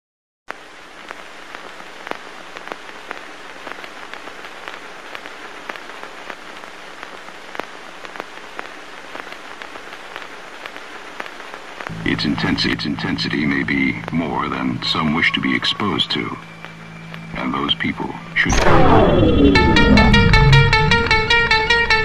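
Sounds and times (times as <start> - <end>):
film surface hiss: 0.5 - 22.0.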